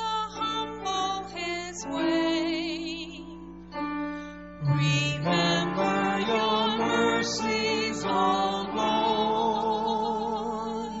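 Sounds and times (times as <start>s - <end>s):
person singing a psalm: 4.6s - 11.0s.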